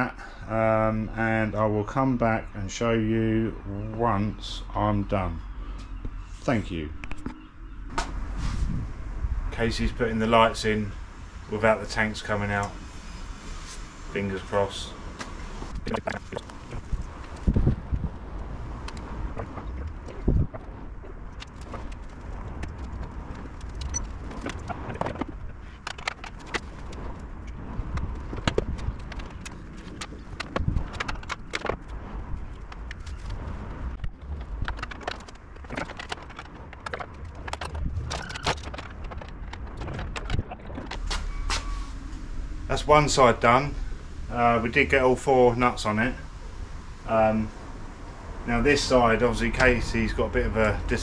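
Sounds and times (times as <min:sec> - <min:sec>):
low steady rumble: 0:00.0 - 0:51.0.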